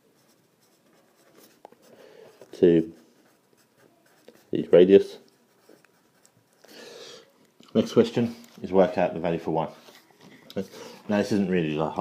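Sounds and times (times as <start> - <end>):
pencil scratching on paper: 0.0 - 6.6.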